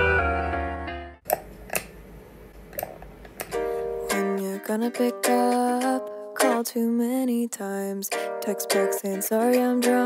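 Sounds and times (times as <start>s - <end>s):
music with plucked strings and keys: 0.0s - 1.2s, 3.5s - 10.0s.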